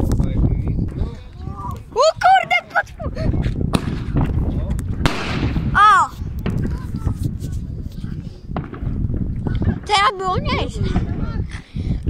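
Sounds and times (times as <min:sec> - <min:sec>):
fireworks cracking and banging: 0:03.6 - 0:07.6, 0:08.5 - 0:11.2.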